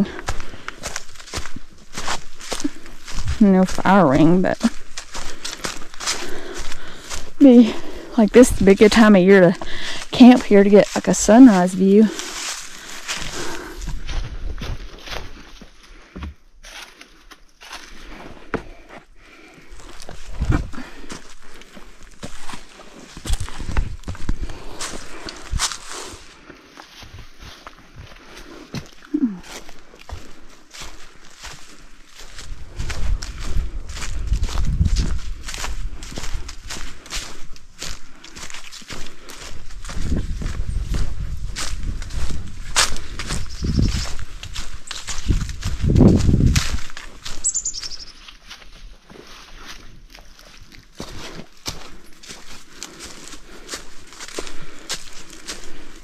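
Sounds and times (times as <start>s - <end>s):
footsteps crunching dry leaves: 0.0s - 56.0s.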